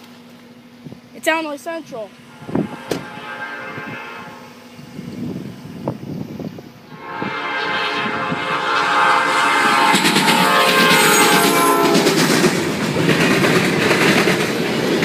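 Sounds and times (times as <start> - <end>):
locomotive air horn blasts: 2.3 - 4.7, 6.9 - 12.4.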